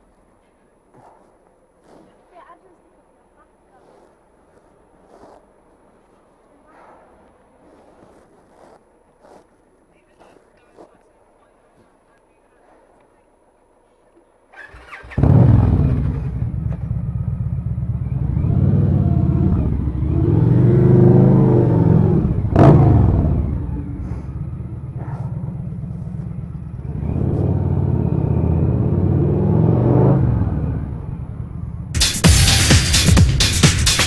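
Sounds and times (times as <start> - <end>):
motorcycle engine revving: 14.5 - 34.0.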